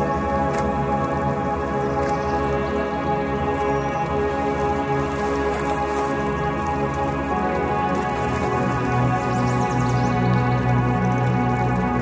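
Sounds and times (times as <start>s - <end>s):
calm ambient music: 0.0s - 12.0s
falling rain: 0.0s - 12.0s.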